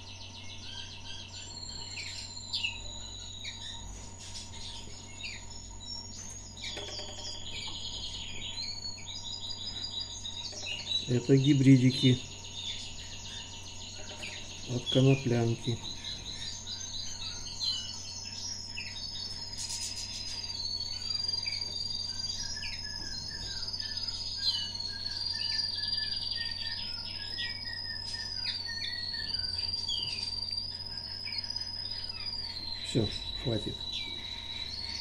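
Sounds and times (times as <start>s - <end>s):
nestlings chirping and squeaking: 0.0s - 35.0s.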